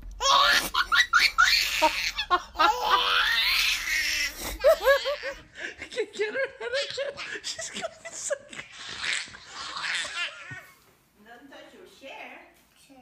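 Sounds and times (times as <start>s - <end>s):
baby laughing: 0.2s - 5.7s, 6.3s - 10.8s.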